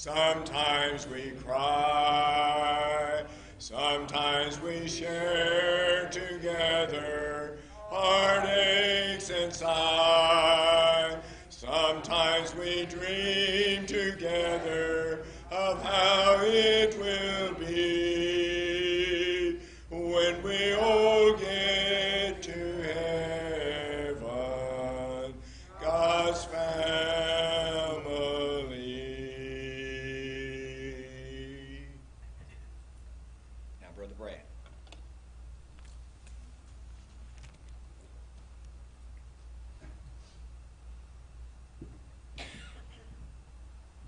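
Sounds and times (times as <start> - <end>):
a cappella hymn singing: 0.0 - 32.1.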